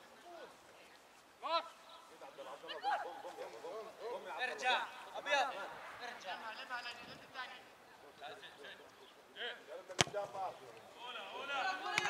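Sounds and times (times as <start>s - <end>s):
football kicked: 9.9s - 10.4s.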